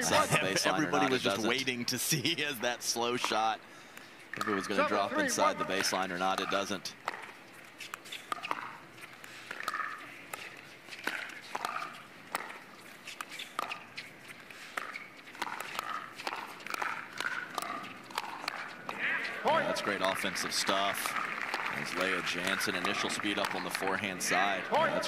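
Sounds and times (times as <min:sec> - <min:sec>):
paddles striking plastic ball: 0:05.3 - 0:12.6, 0:14.7 - 0:19.0, 0:20.0 - 0:24.0.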